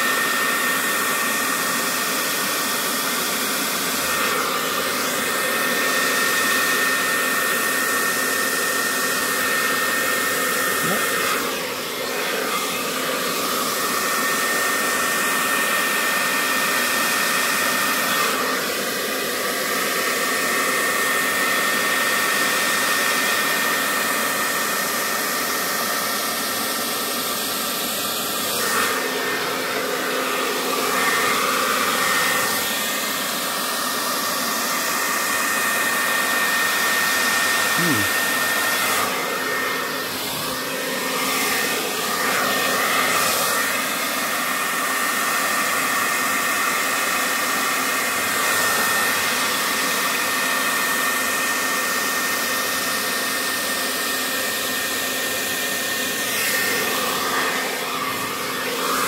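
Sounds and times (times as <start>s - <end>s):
hair dryer blowing air: 0.0s - 59.0s.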